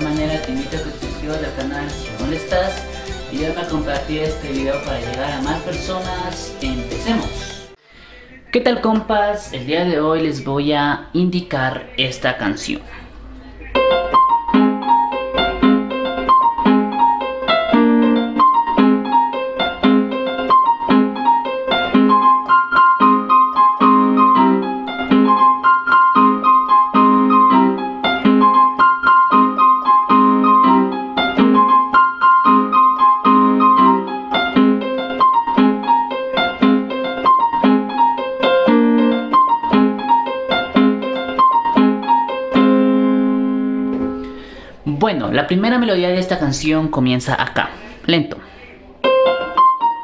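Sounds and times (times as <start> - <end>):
electronic keyboard piano chords: 0.0 - 7.8, 13.2 - 46.9, 49.0 - 50.0.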